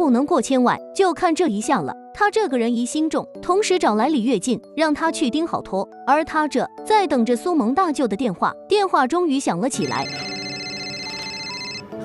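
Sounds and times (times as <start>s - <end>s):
soft background music: 0.0s - 12.0s
mobile phone ringtone: 9.7s - 12.0s.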